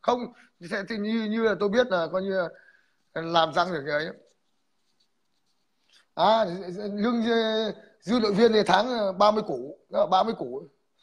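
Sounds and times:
man speaking: 0:00.0 - 0:04.4, 0:06.1 - 0:10.8.

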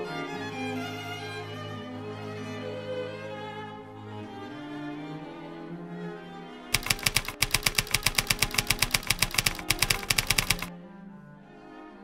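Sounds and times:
typewriter keys clacking: 0:06.8 - 0:10.7.

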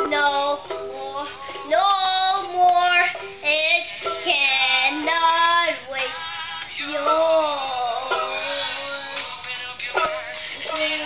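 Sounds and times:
boy singing: 0:00.0 - 0:11.0.

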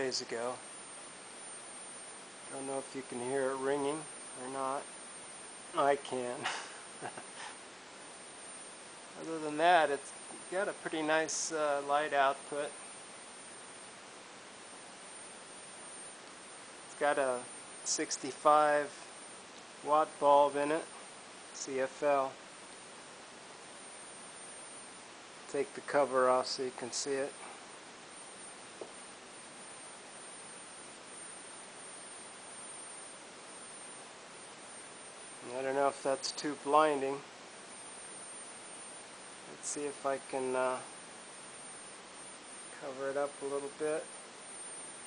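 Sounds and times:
faint high-pitched whine: 0:00.0 - 0:45.0
steady hiss: 0:00.0 - 0:45.0.

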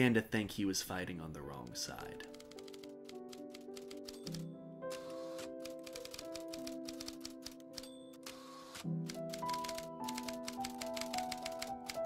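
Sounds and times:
background music with held notes: 0:00.1 - 0:12.0
typewriter keystrokes: 0:02.2 - 0:12.0.

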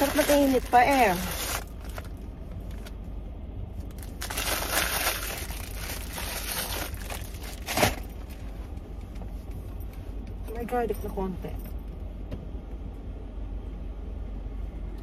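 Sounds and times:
paper bag crinkling: 0:00.0 - 0:02.9, 0:03.9 - 0:08.1
sharp paper crackle: 0:00.0 - 0:02.9, 0:03.9 - 0:08.0.

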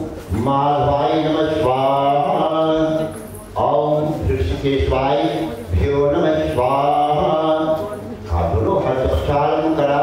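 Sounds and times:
man chanting: 0:00.0 - 0:10.0.

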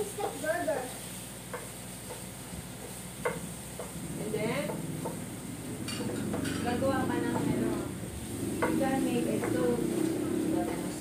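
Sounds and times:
shrimp sizzling in a frying pan: 0:00.0 - 0:11.0.

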